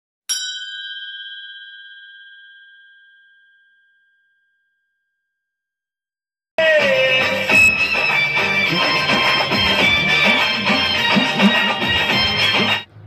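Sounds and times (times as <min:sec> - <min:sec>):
bell-like chime: 0:00.3 - 0:05.3.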